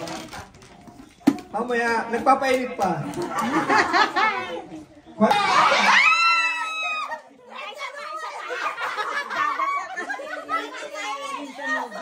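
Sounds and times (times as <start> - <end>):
people talking excitedly: 1.5 - 12.0.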